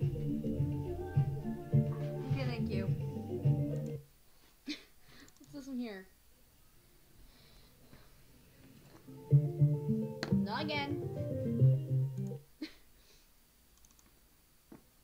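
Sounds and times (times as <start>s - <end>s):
sliding vocal sound: 1.4s - 2.4s
click: 3.7s - 4.0s, 5.2s - 5.6s, 13.8s - 14.1s
plucked guitar notes: 9.2s - 12.4s.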